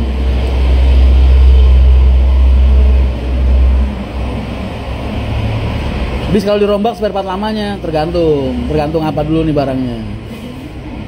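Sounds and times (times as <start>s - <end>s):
loud low rumble: 0.0s - 8.9s.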